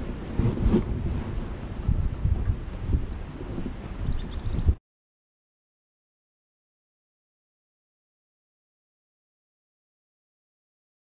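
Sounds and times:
wind buffeting microphone: 0:00.0 - 0:04.8.

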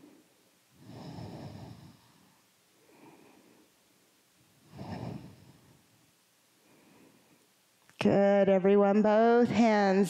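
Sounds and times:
woman breathing: 0:00.0 - 0:07.7.

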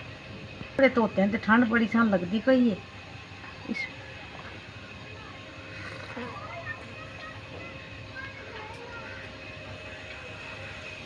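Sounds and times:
distant indistinct voices: 0:00.8 - 0:11.0.

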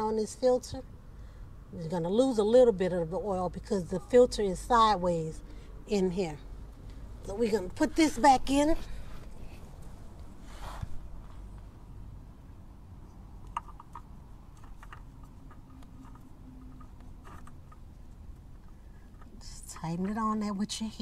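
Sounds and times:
low steady background rumble: 0:00.0 - 0:21.0.

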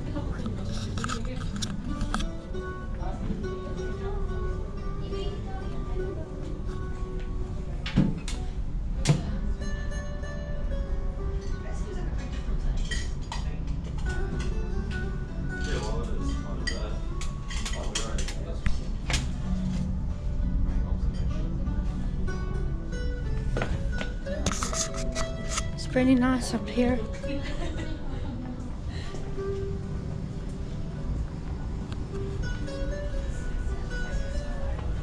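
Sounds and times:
background music: 0:00.0 - 0:35.0.

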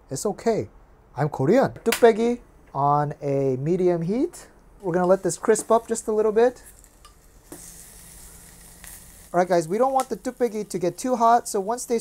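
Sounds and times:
bacon sizzling in a clay pot: 0:04.8 - 0:12.0.

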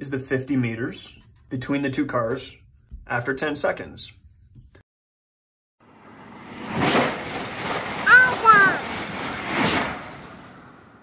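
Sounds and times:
short voice-like call: 0:08.1 - 0:08.8.

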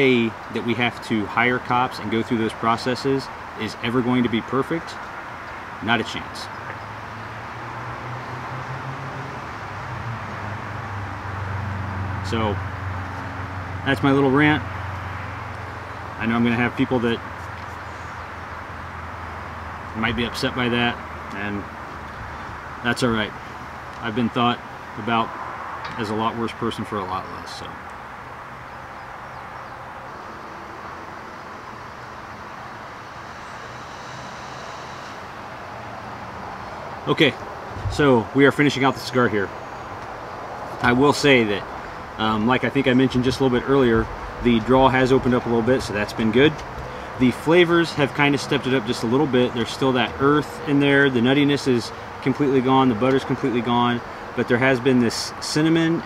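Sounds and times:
distant traffic hum and hiss: 0:00.0 - 0:56.0.

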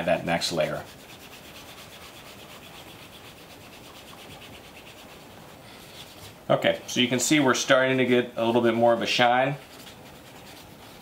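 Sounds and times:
cloth rubbing leather shoe: 0:00.0 - 0:11.0.

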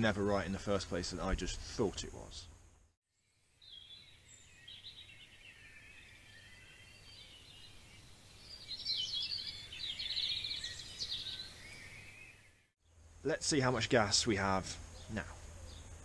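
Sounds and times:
birds chirping and trilling: 0:03.3 - 0:13.0, 0:13.7 - 0:16.0.

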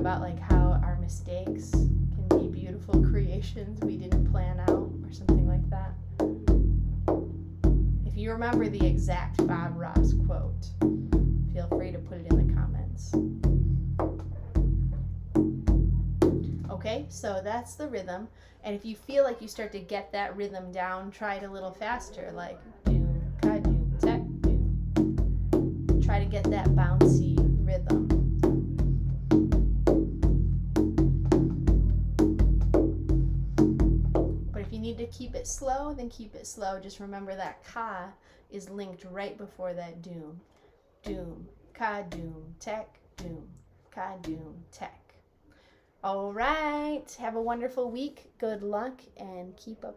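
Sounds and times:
hand frame drum rhythm: 0:00.0 - 0:17.3, 0:22.9 - 0:35.8, 0:41.0 - 0:41.5, 0:42.1 - 0:42.6, 0:44.2 - 0:44.6
frame drum deep ringing strokes: 0:01.7 - 0:17.3.

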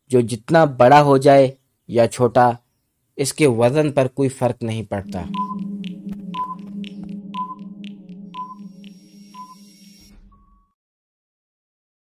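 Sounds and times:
low steady hum: 0:04.8 - 0:10.4
clock-like ticks: 0:05.0 - 0:10.0
short beeps: 0:05.0 - 0:10.7.

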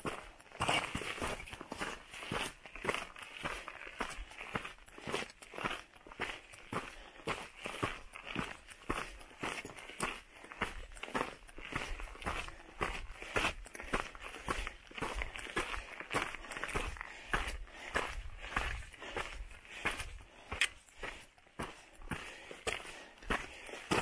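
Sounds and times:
footsteps on gravel: 0:00.0 - 0:24.0.

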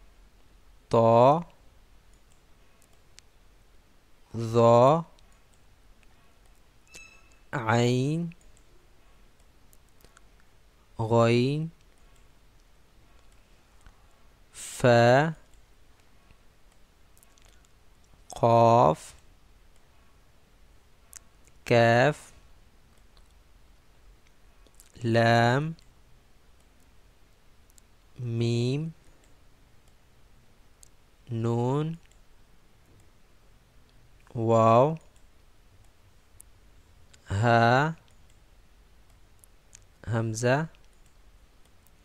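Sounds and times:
man speaking: 0:00.9 - 0:01.5, 0:04.3 - 0:05.1, 0:07.6 - 0:08.4, 0:11.0 - 0:11.8, 0:14.6 - 0:15.4, 0:18.3 - 0:19.2, 0:21.7 - 0:22.4, 0:25.0 - 0:25.8, 0:28.2 - 0:29.0, 0:31.3 - 0:32.0, 0:34.3 - 0:35.0, 0:37.2 - 0:38.0, 0:40.0 - 0:40.7
computer mouse clicks: 0:02.1 - 0:03.3, 0:05.2 - 0:07.5, 0:08.3 - 0:08.7, 0:09.3 - 0:10.6, 0:11.8 - 0:14.2, 0:29.0 - 0:30.0, 0:31.9 - 0:33.2, 0:38.0 - 0:40.0, 0:40.7 - 0:42.0.

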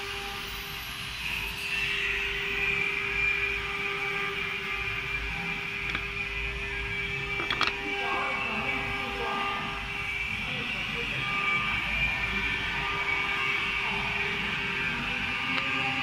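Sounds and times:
workshop machinery running: 0:02.9 - 0:16.0.

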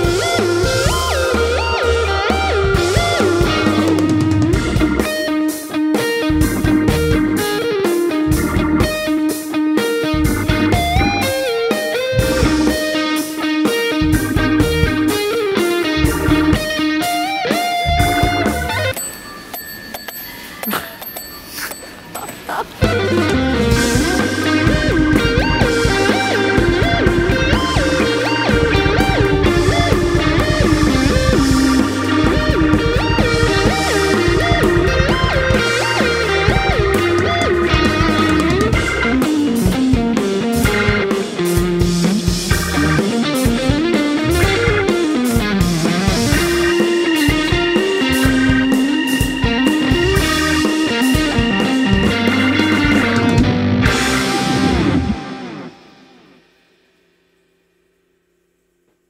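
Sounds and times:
walking bass line: 0:00.0 - 0:05.4, 0:06.2 - 0:09.2, 0:10.0 - 0:13.0, 0:14.0 - 0:17.0, 0:17.8 - 0:18.9, 0:22.8 - 0:55.5
drums playing a groove: 0:00.0 - 0:19.1, 0:22.2 - 0:56.4
electric guitar: 0:00.0 - 0:19.1, 0:22.3 - 0:57.2
organ chords: 0:00.0 - 0:19.5, 0:22.1 - 0:56.9.

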